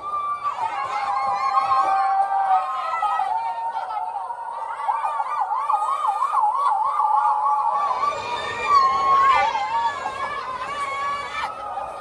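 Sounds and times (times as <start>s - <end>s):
women making wavering hooting cry: 0.0s - 12.0s.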